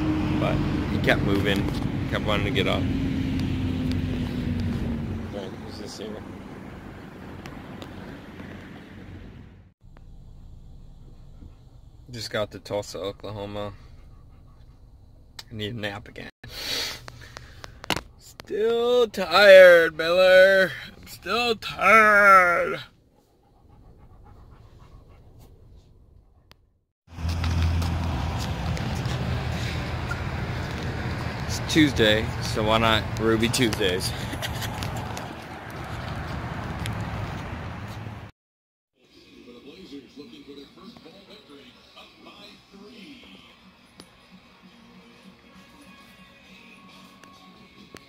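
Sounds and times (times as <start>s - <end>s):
outdoor low rumble: 0.0s - 15.5s, 23.0s - 38.3s
car interior low hum: 4.1s - 15.4s
dog panting: 12.8s - 15.1s, 22.9s - 26.6s.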